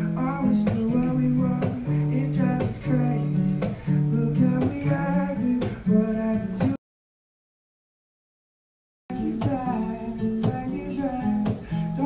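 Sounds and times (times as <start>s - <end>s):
acoustic guitar strumming chords: 0.0s - 6.8s, 9.1s - 12.0s
man singing into microphone: 0.0s - 6.8s, 9.1s - 12.0s.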